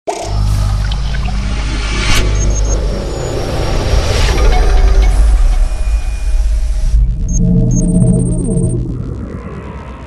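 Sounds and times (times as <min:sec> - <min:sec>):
deep rumbling drone: 0:00.1 - 0:10.0.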